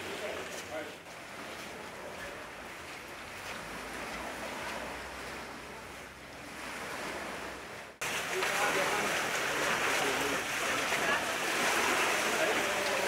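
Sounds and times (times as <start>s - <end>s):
sea waves washing onto sand: 0.0s - 13.0s.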